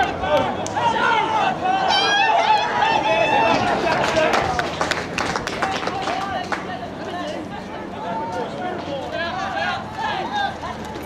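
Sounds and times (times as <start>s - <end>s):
players and spectators shouting: 0.0s - 11.0s.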